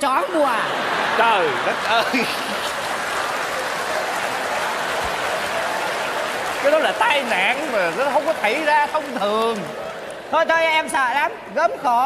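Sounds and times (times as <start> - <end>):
audience applauding: 0.2 - 10.7.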